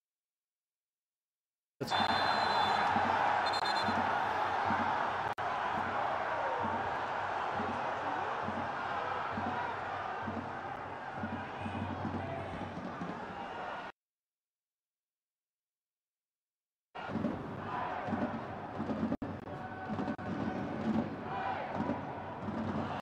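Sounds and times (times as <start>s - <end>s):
stadium crowd voices: 1.8s - 13.9s, 17.0s - 23.0s.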